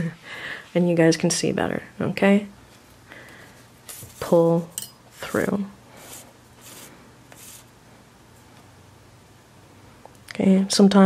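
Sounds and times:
thread rubbing through plastic liner: 6.0s - 7.7s.

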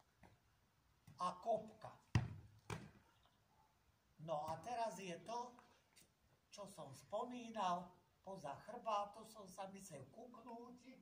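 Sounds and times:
ball kicked thump: 2.1s - 3.0s.

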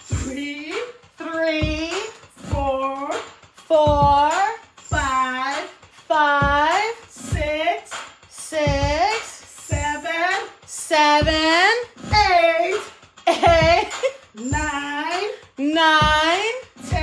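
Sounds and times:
person counting in sing-song voice: 0.0s - 17.0s.

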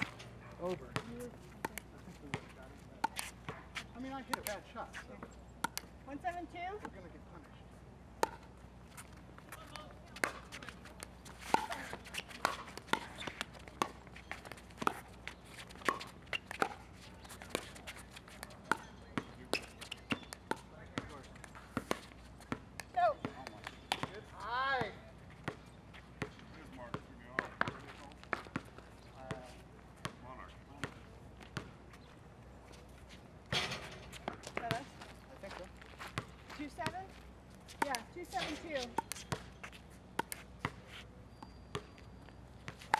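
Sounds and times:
ball bouncing on hard court: 0.0s - 5.9s, 8.2s - 8.6s, 9.5s - 31.7s, 33.5s - 37.1s, 37.7s - 42.9s.

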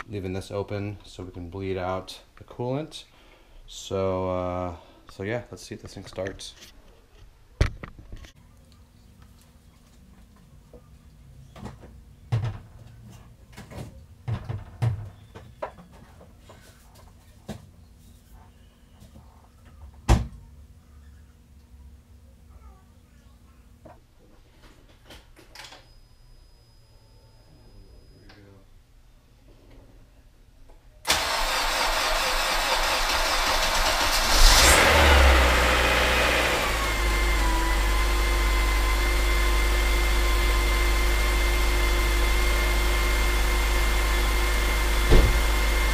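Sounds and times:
car engine starting and idling: 31.1s - 45.9s.

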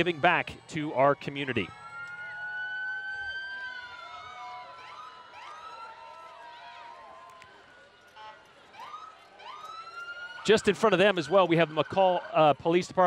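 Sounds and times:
police sirens: 0.0s - 13.0s.

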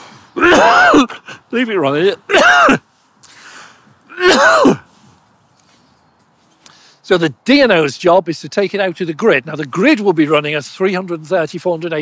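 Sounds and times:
man coughing: 0.4s - 1.5s, 2.3s - 2.8s, 4.1s - 4.9s
breath drawn in: 2.9s - 4.0s.

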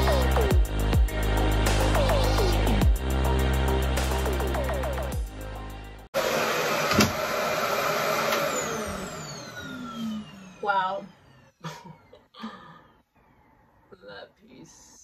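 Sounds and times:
hair dryer running: 6.2s - 11.6s
motor winding down: 6.2s - 11.6s.

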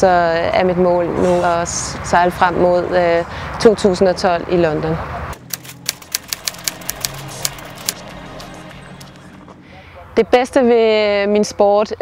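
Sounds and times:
typewriter key clicks: 5.4s - 9.1s
soft background music: 5.4s - 11.1s.

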